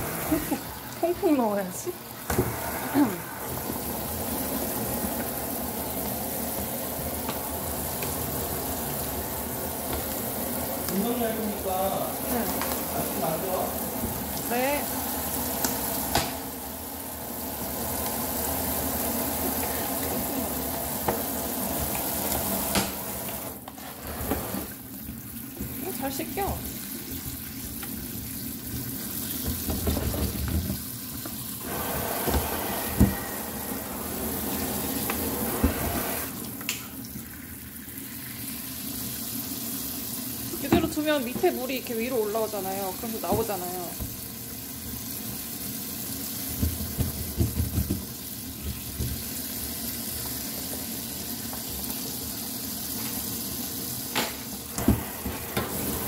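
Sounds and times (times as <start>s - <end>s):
tap running into steel sink: 29.4s - 31.4s, 46.5s - 49.3s.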